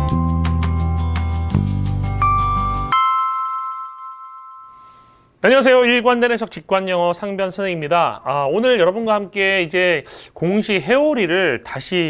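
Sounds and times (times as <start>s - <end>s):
bell-like chime: 2.1s - 5.3s.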